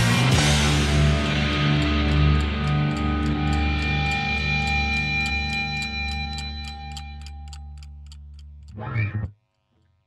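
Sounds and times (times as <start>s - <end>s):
fast ticking: 0.6s - 9.7s.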